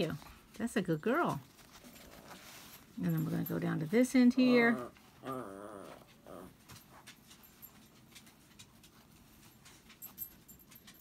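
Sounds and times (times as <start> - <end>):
fabric and pins ticking: 0.0 - 5.4, 6.3 - 11.0
dog whining: 4.4 - 6.6.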